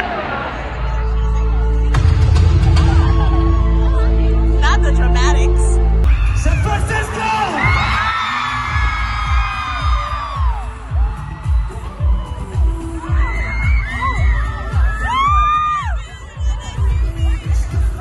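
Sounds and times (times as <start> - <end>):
live pop concert music: 0.0 - 18.0
fans screaming: 6.1 - 16.4
heavy kick drum beat: 6.2 - 18.0.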